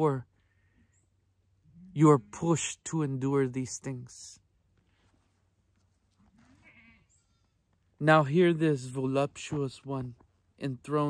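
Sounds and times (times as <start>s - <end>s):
goat bleating: 6.3s - 7.6s.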